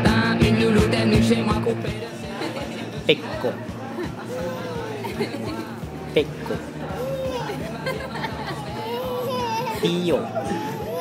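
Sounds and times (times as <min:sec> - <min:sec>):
background chatter: 0:00.0 - 0:11.0
toddler girl laughing: 0:07.0 - 0:11.0.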